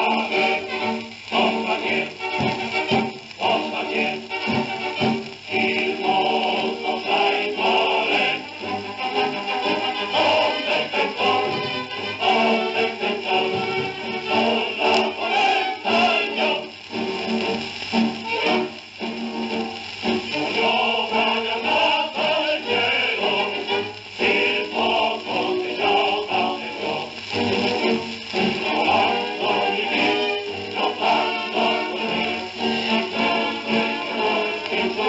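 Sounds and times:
song with instrumental accompaniment: 0.0s - 35.0s.

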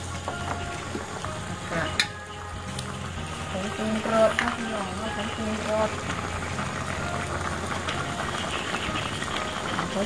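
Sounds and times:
curry bubbling in a pan: 0.0s - 10.0s.

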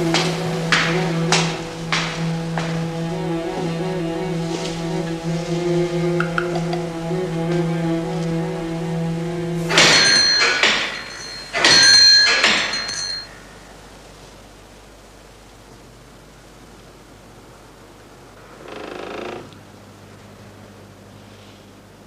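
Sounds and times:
hanging door bell jangling: 9.7s - 13.4s.

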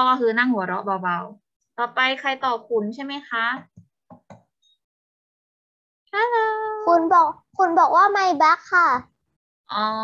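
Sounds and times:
woman speaking over video call: 0.0s - 3.9s, 6.1s - 7.1s, 9.7s - 10.0s.

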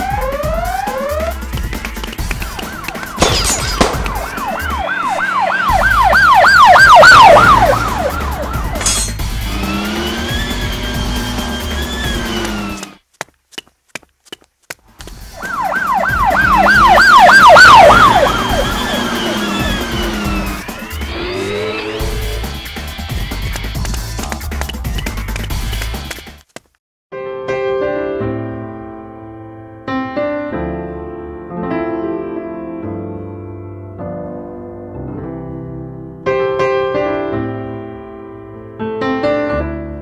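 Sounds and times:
police siren: 0.0s - 13.0s, 15.3s - 23.2s.

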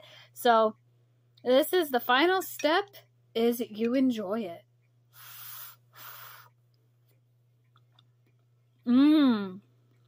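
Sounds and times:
puffs of breath blowing: 5.1s - 6.5s.

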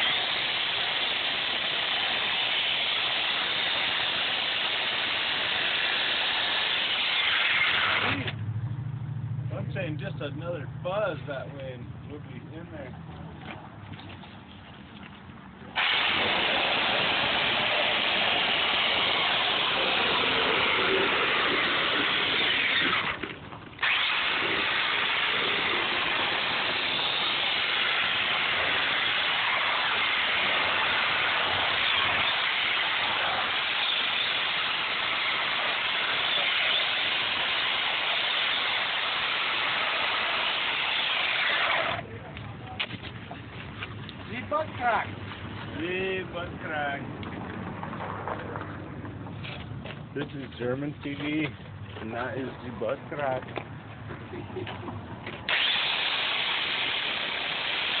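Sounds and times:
electric chainsaw cutting foam: 0.0s - 8.4s, 15.8s - 42.0s, 55.5s - 58.0s.

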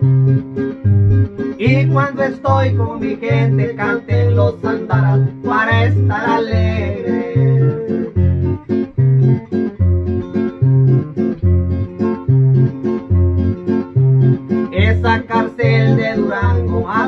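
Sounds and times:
acoustic guitars strumming: 0.0s - 17.0s
man singing: 1.6s - 8.3s, 14.6s - 17.0s.

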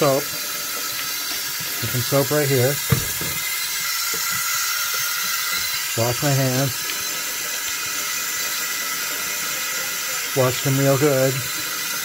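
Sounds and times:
faucet running into steel sink: 0.0s - 12.0s.

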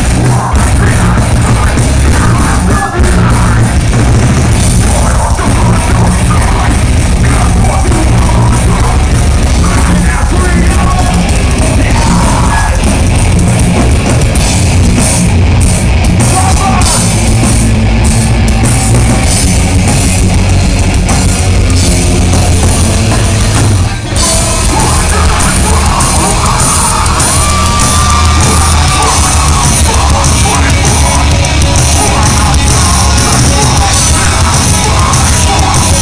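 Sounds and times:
heavy metal band playing live: 0.0s - 36.0s.

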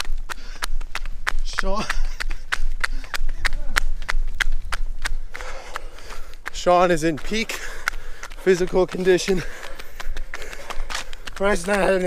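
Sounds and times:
footsteps in sandals on pavement: 0.0s - 12.0s.

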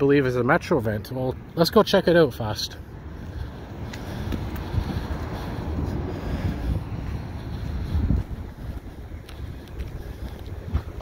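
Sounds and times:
wind buffeting microphone: 2.8s - 11.0s.

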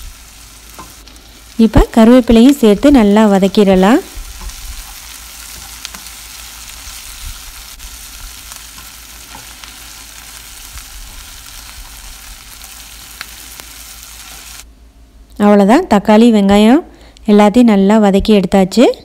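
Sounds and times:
vegetables sizzling in hot oil: 0.0s - 14.7s.

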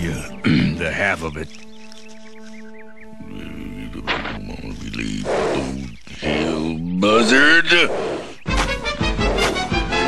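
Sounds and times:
background music score: 0.0s - 6.4s, 8.4s - 10.0s.

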